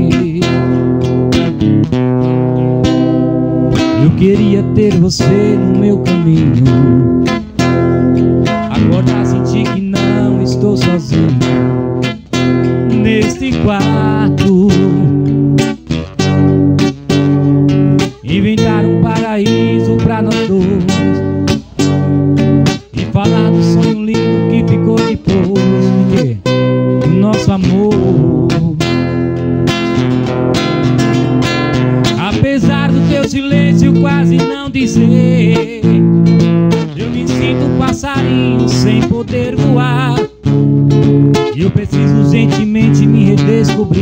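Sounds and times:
man singing with vibrato: 0.0 - 1.5, 3.8 - 7.5, 8.4 - 11.6, 12.7 - 15.8, 18.0 - 29.1, 32.0 - 40.6, 41.2 - 44.0
acoustic guitar strummed: 0.0 - 44.0.

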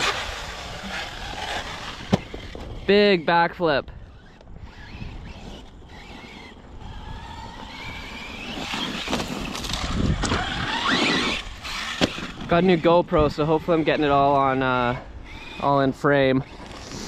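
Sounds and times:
electric motor whining: 0.0 - 17.0
tyres on dirt and gravel: 0.0 - 17.0.

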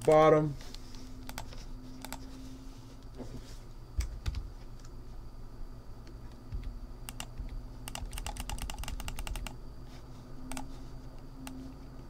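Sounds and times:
low steady hum: 0.0 - 12.0
keyboard keystrokes: 6.5 - 9.6
mouse clicks: 7.1 - 9.6.

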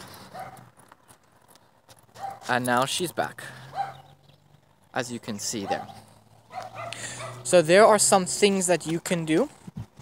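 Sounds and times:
footsteps on road: 0.0 - 10.0.

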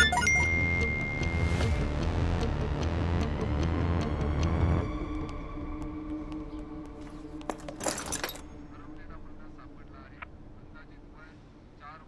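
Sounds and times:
jangling clatter: 7.5 - 8.5.

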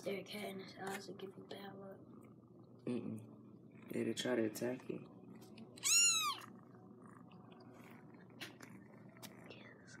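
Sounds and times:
kitten meowing: 5.8 - 6.5.

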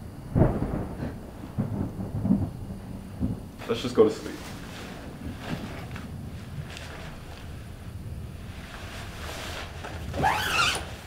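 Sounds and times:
thunder rumbling: 0.0 - 11.0.

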